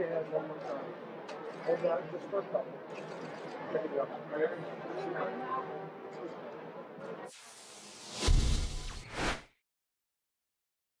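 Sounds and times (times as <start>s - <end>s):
whoosh: 7.3s - 9.5s
deep boom: 8.2s - 8.9s.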